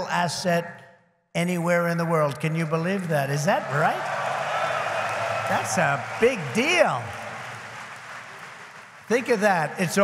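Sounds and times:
audience applauding: 3.4s - 10.0s.

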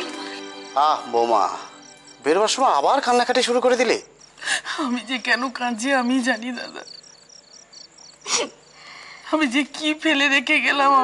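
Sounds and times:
crickets chirping: 0.0s - 11.0s
woman's voice: 4.6s - 6.9s, 9.2s - 11.0s.

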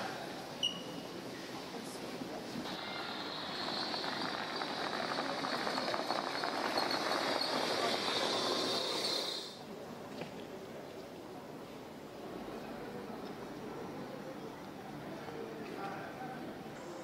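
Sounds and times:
steady high hiss: 0.0s - 9.8s
electric utility cart driving: 2.7s - 9.6s.

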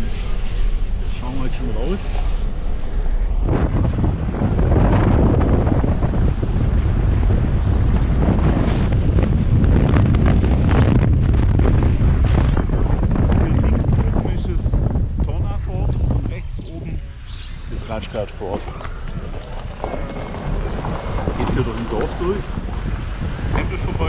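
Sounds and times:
wind buffeting microphone: 0.0s - 24.0s.

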